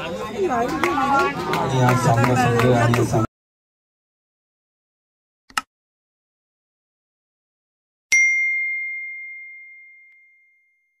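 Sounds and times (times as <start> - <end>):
notification bell ding: 8.1 - 11.0.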